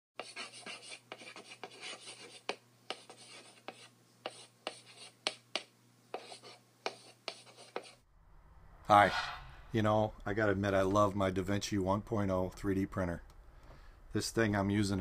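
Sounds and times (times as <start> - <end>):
chalk scratching on blackboard: 0.2 - 8.0
chalk tapping: 0.2 - 8.0.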